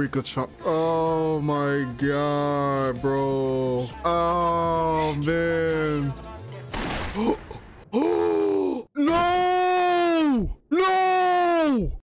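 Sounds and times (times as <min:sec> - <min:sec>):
person groaning: 0:07.2 - 0:09.2.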